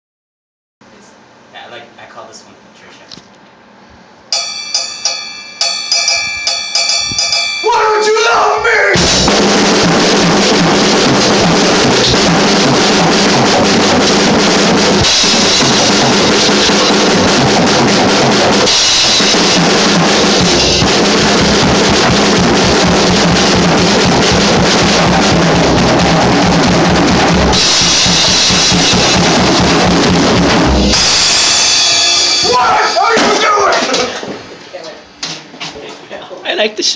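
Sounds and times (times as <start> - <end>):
ringing cymbal and drum strokes: 4.3 - 8.1, 9.0 - 33.4
full drum kit groove: 4.4 - 34.6.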